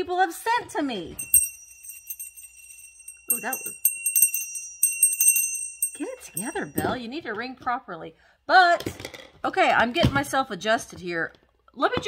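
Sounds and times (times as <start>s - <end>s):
hand bell shaken: 1.2s - 6.9s.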